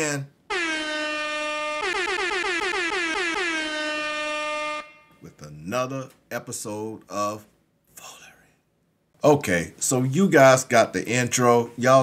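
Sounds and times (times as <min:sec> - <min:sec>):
stuttering air horn blast: 0:00.5 - 0:05.2.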